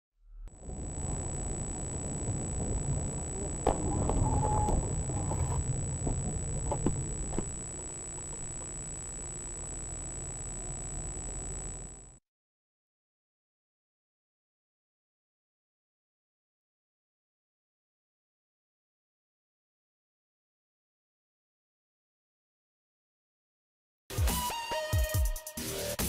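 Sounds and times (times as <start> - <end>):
thin high-pitched whine: 0.5 - 12.2
car road and engine rumble: 0.6 - 12.1.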